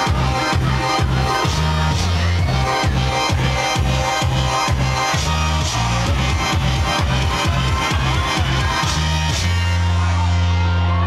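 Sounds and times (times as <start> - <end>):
electronic house dance music: 0.0 - 11.0
pulsing bass line: 0.0 - 11.0.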